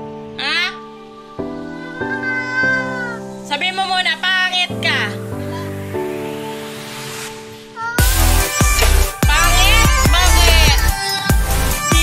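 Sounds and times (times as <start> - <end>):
background music with chords: 0.0 - 12.0.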